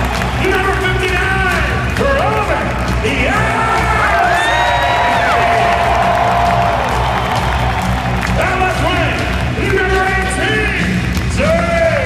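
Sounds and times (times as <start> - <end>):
crowd cheering and whooping: 0.0 - 1.0, 3.3 - 9.4
music over sound system: 0.0 - 12.0.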